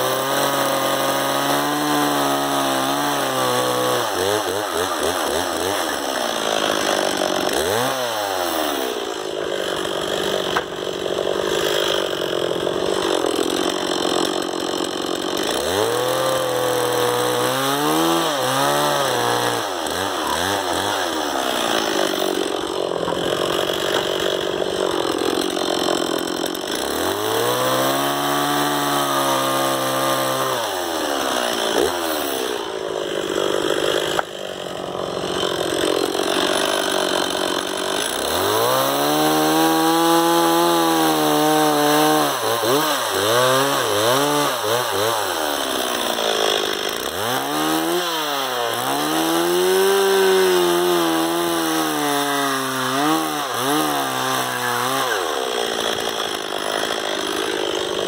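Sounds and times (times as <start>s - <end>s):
chainsaw cutting into log: 0.0s - 58.0s.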